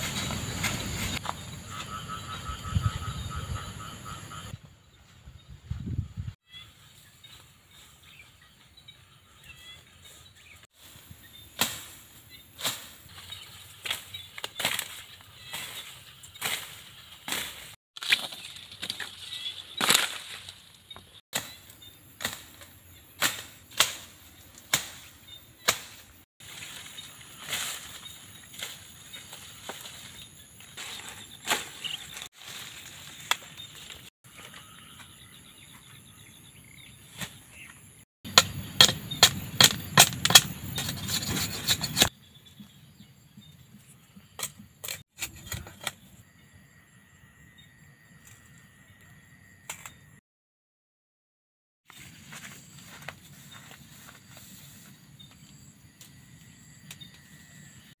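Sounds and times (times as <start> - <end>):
blade chopping sugarcane: 23.2 - 26.1, 38.3 - 42.1.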